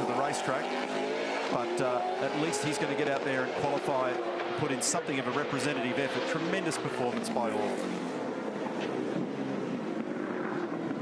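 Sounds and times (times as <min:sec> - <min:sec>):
race car engine on track: 0:00.0 - 0:11.0.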